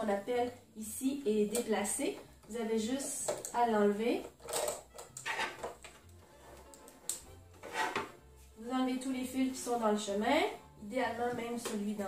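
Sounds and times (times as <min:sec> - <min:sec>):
soft background music: 0:00.0 - 0:12.0
hands working at sewing machine: 0:04.3 - 0:08.2.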